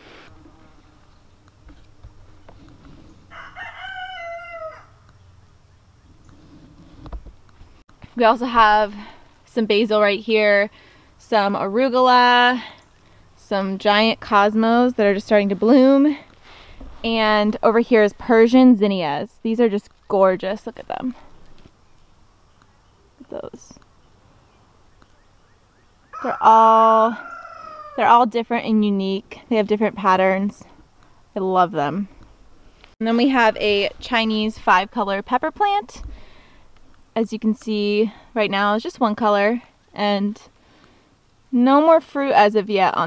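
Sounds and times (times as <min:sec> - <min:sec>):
rooster crowing: 0:03.3 - 0:05.1, 0:26.1 - 0:28.0.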